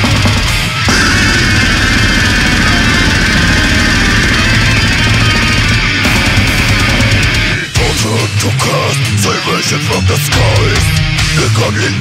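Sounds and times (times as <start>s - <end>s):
heavy metal guitar and drums: 0.0s - 12.0s.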